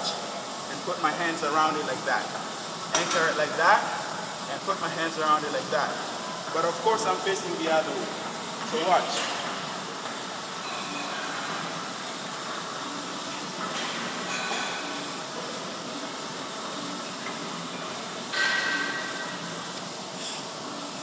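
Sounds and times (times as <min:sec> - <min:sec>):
gym room noise hiss: 0:00.0 - 0:21.0.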